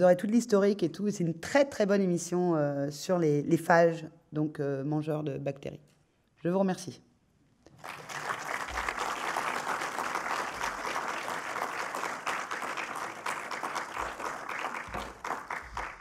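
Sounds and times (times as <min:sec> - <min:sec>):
audience applauding: 0:07.7 - 0:16.0.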